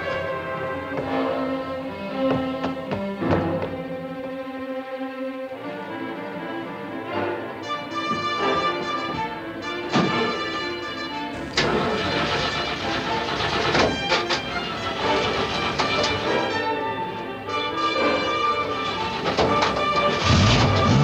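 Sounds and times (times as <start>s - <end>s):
orchestral film score: 0.0s - 21.0s
truck engine running: 11.4s - 17.3s, 18.1s - 21.0s.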